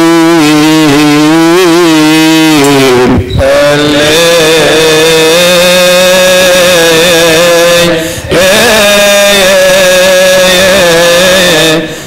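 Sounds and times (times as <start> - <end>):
man chanting a sustained note: 0.0 - 12.0.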